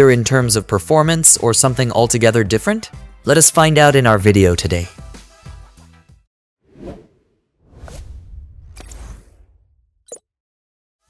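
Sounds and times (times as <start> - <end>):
whoosh: 6.7 - 9.9.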